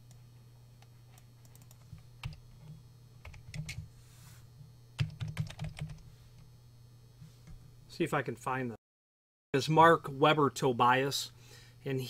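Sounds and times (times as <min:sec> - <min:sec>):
low electrical hum: 0:00.0 - 0:08.8, 0:09.6 - 0:12.0
typing on computer keyboard: 0:01.4 - 0:02.4, 0:05.0 - 0:06.0.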